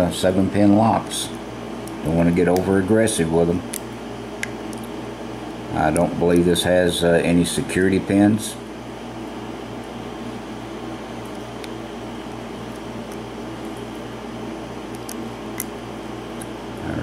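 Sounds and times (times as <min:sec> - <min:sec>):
steady background hum: 0:00.0 - 0:17.0.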